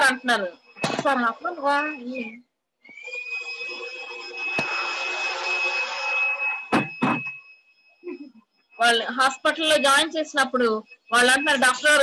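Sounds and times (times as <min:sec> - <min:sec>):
shrill whistle: 0:00.8 - 0:08.0.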